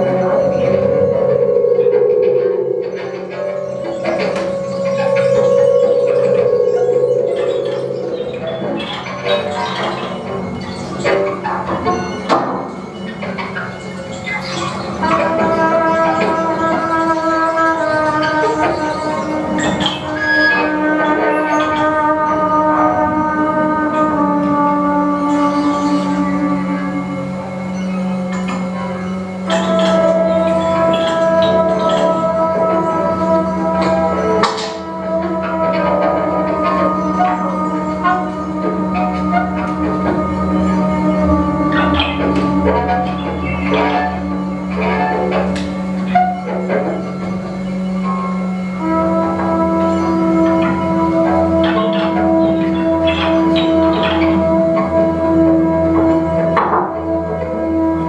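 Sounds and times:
scattered higher sounds: 0:00.0 - 0:58.0
steady low drone: 0:00.0 - 0:58.0
wavering held trumpet tone: 0:00.0 - 0:58.0.

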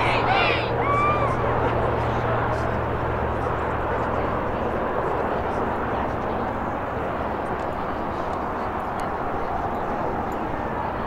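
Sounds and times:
distant indistinct chatter: 0:00.0 - 0:11.0.

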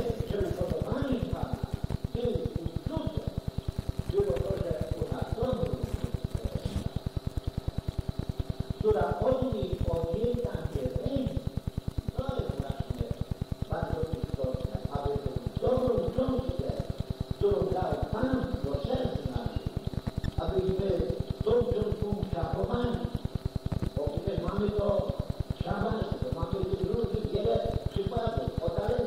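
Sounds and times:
voice on old recording: 0:00.0 - 0:07.7, 0:08.4 - 0:29.0
fast low pulsing: 0:00.0 - 0:29.0.

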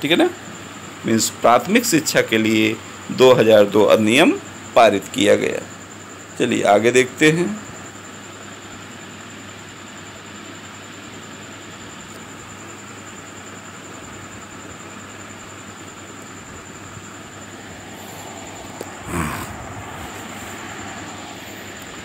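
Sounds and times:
faint high-pitched whine: 0:00.0 - 0:22.0
steady hiss: 0:00.0 - 0:22.0.

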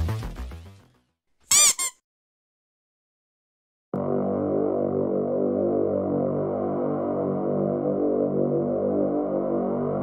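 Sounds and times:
short high-pitched squeak: 0:01.5 - 0:02.0.

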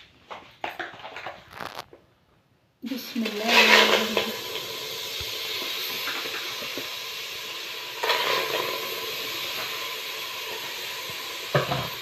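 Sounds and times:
steady hiss: 0:02.8 - 0:12.0
knock against pot: 0:11.5 - 0:12.0.

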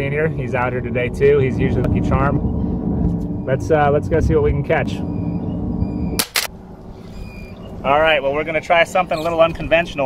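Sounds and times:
steady low hum: 0:00.0 - 0:09.9
sharp clicks: 0:06.2 - 0:06.5.

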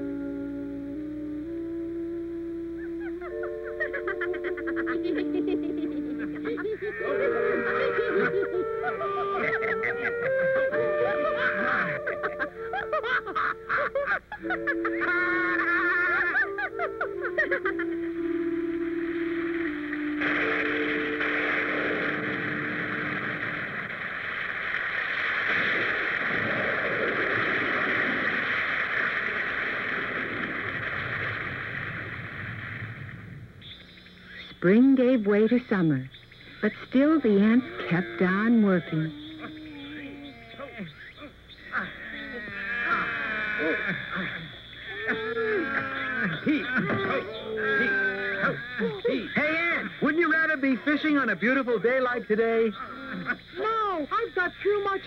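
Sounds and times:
cartoon music melody: 0:00.0 - 0:23.1
rain hissing: 0:00.0 - 0:34.6.

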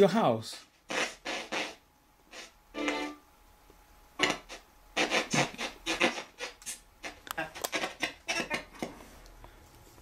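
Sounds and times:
radio static sweeping stations: 0:00.9 - 0:03.1, 0:04.2 - 0:08.7.

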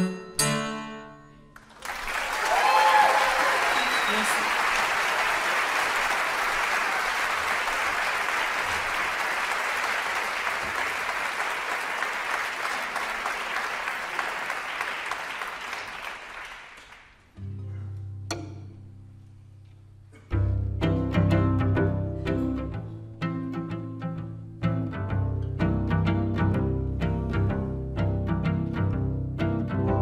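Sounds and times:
audience applauding: 0:01.6 - 0:17.3.

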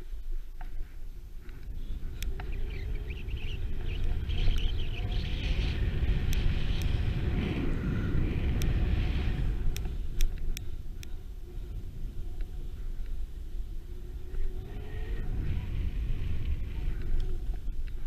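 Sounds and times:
wind rumbling on microphone: 0:00.0 - 0:18.0
sharp ticks: 0:01.4 - 0:07.2, 0:08.4 - 0:08.9, 0:09.6 - 0:11.2.

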